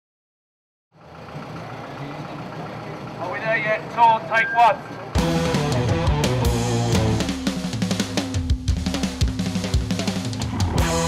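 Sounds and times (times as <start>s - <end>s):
bus engine idling: 0.9s - 7.5s.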